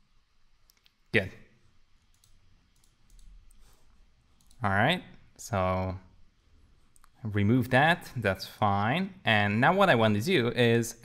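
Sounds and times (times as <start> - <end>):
computer mouse clicks: 0.6 - 1.0, 2.0 - 3.7, 4.3 - 4.6, 6.9 - 7.2.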